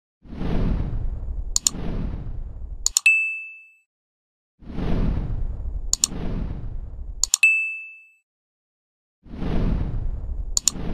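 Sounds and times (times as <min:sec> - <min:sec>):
double mouse click: 0:02.9 - 0:03.1, 0:07.2 - 0:07.4
notification bell ding: 0:03.0 - 0:03.8, 0:07.3 - 0:08.2.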